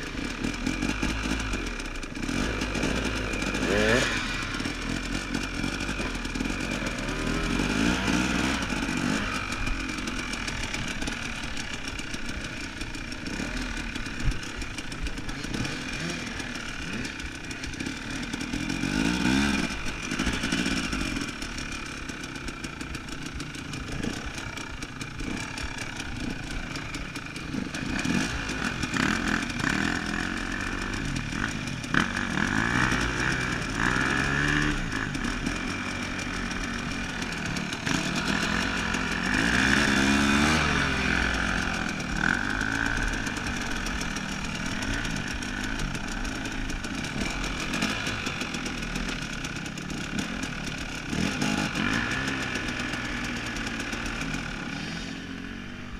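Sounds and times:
dirt bike engine revving: 0.0s - 55.9s.

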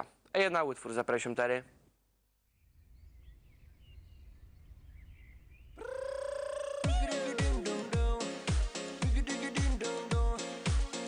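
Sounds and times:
faint bird chirps: 2.4s - 6.8s
drum beat: 6.8s - 9.3s.

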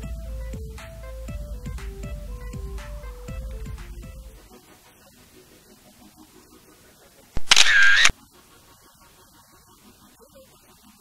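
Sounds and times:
camera shutter click: 7.4s - 8.1s.

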